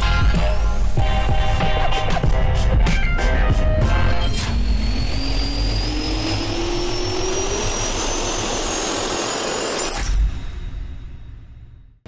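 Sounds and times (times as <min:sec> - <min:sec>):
jet engine turbine whine: 0:00.0 - 0:10.3.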